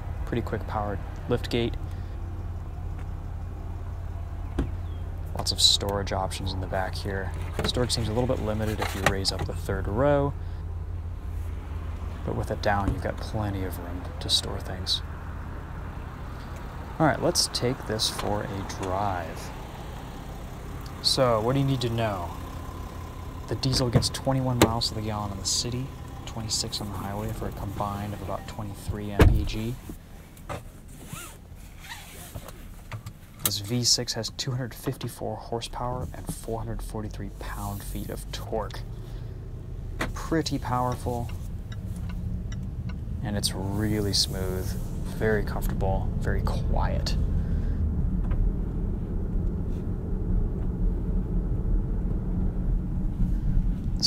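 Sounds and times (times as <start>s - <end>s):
diesel engine idling: 0.0s - 31.8s, 32.6s - 54.0s
seatbelt webbing sliding out: 29.8s - 32.9s.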